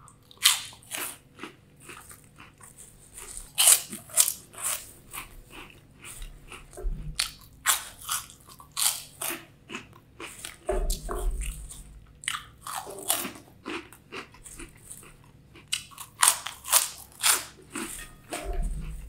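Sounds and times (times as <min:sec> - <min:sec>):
crunchy snacks being chewed: 0:00.0 - 0:19.0.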